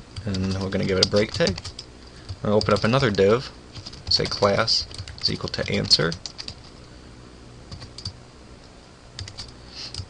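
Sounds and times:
computer keyboard typing: 0.2 - 6.8, 7.7 - 8.2, 9.2 - 10.0.

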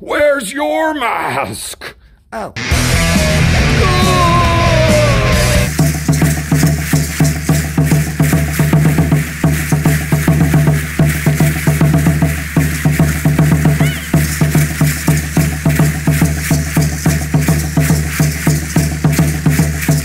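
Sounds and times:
fast drum beat: 2.6 - 20.0.

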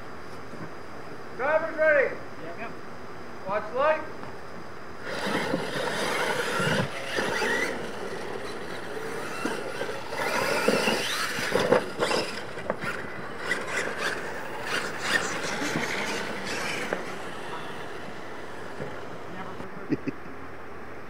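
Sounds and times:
electric motor whine: 5.0 - 19.7
tyres churning dirt: 5.0 - 19.7.

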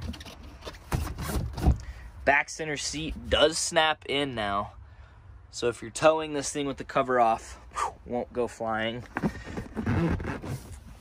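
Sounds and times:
boat seat knocking and scraping: 9.1 - 10.8.

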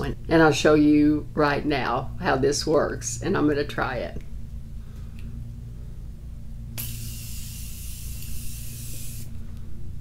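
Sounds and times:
spray bottle mist hiss: 6.8 - 9.3.

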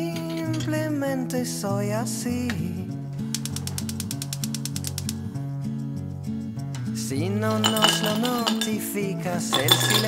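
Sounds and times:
background music: 0.0 - 10.0
gas hob igniter clicking: 3.2 - 5.2.

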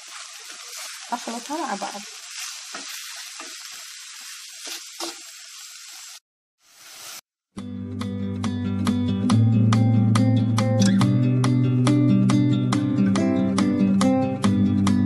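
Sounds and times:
filling sizzling in a pot: 0.0 - 7.3
plucked guitar music: 7.6 - 15.0.

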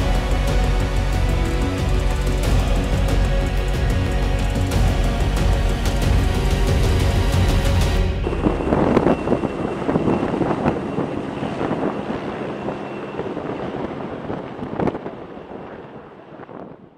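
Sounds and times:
helicopter rotor and turbine: 0.0 - 16.9
wind buffeting microphone: 0.0 - 16.9.

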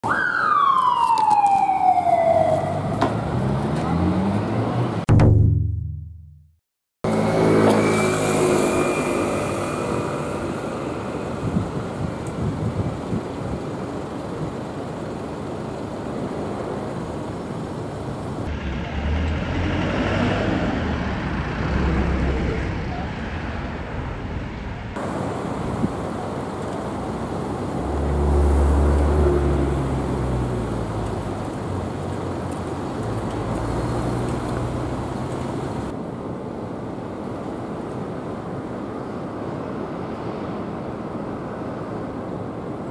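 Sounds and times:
cars passing: 1.8 - 5.1, 7.1 - 42.9
heavier engine: 7.1 - 36.4.

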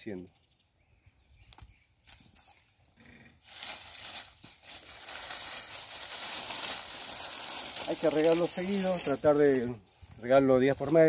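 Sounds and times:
dry stalks crackling underfoot: 1.3 - 11.0.

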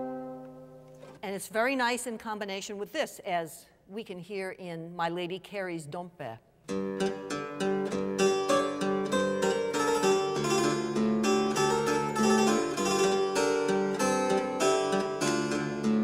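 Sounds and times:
harpsichord playing quick notes: 6.7 - 16.0.

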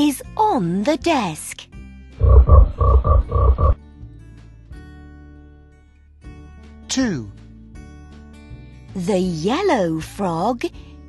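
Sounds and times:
soft background music: 0.0 - 11.0
frog croaks: 2.2 - 3.8.

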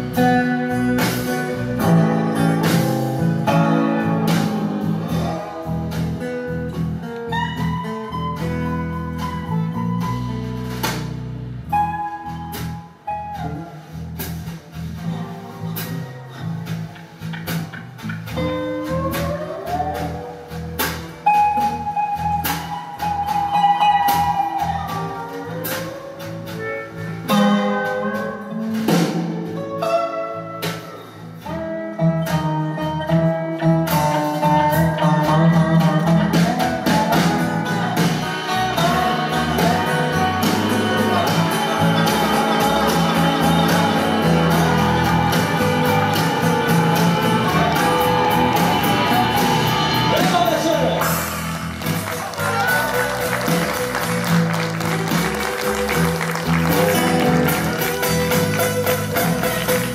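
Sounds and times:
acoustic guitar: 0.0 - 59.9
resonator guitar: 0.0 - 59.9.

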